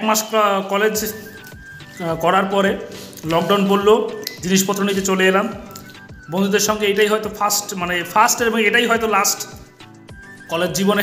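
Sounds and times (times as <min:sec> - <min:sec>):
man speaking: 0:00.0 - 0:05.7, 0:06.3 - 0:09.6, 0:10.5 - 0:11.0
wet mouth clicks: 0:01.3 - 0:01.8, 0:02.9 - 0:03.4, 0:04.2 - 0:04.5, 0:05.6 - 0:06.1.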